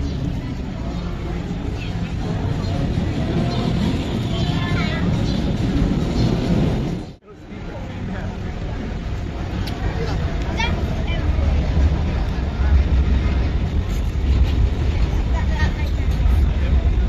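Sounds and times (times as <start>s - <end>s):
low rumble of road traffic: 0.0s - 17.0s
voices of passers-by: 0.0s - 17.0s.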